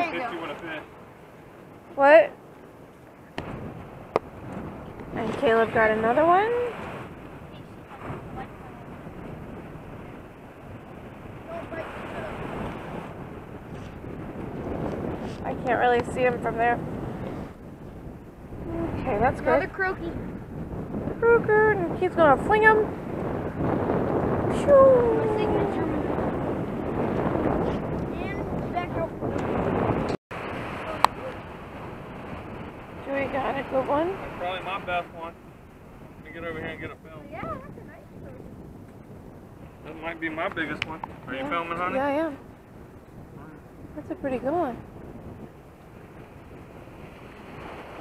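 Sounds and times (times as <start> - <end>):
ocean surf: 0.0 - 48.0
wind on microphone: 0.0 - 48.0.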